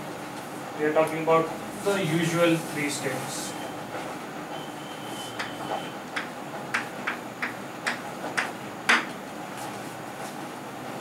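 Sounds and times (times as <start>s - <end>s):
chalk tapping on blackboard: 6.2s - 9.1s.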